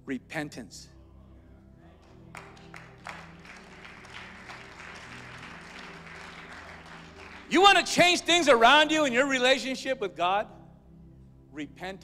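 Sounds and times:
soft organ chords: 0.0s - 12.0s
congregation applauding: 2.0s - 8.9s.

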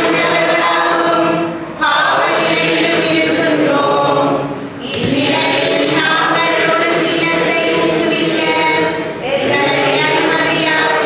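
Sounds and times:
choir singing a hymn: 0.0s - 11.0s.

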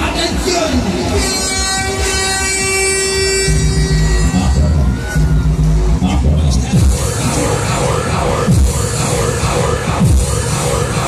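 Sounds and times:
fairground ride music: 0.0s - 11.0s
long horn blast: 1.2s - 5.1s
low rumble: 3.5s - 11.0s.

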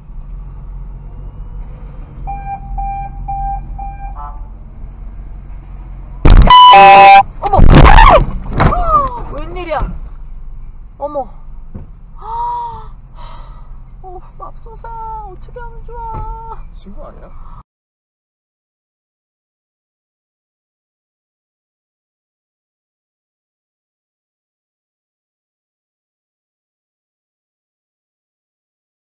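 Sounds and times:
short beeps: 2.3s - 4.4s, 6.3s - 7.3s
loud car horn blast: 3.4s - 4.6s, 6.2s - 7.3s.

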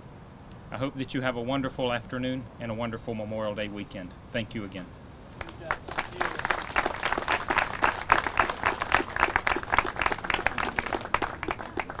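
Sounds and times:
audience applauding: 5.4s - 12.0s.

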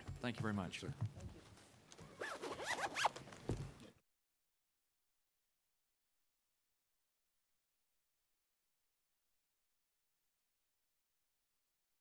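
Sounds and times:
rustling of people moving: 0.0s - 4.0s
chair squeaks: 2.0s - 3.2s.

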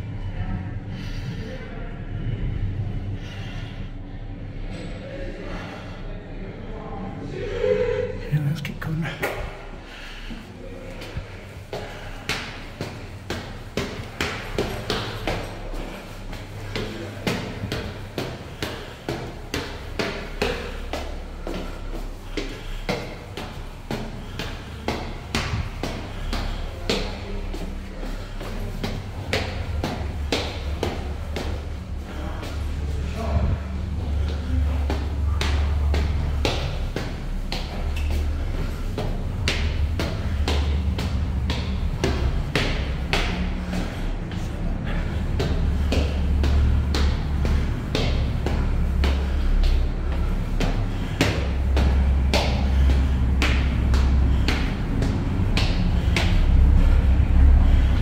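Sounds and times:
low rumble: 0.0s - 58.0s
footsteps on stone stairs: 9.2s - 58.0s.

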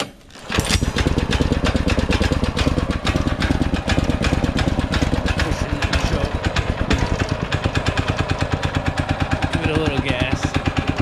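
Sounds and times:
recoil starter pull: 0.0s - 11.0s
small engine running: 0.3s - 11.0s.

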